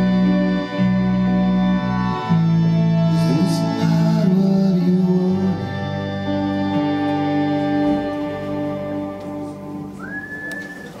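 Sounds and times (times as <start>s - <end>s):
high whistled note: 10.0s - 11.0s.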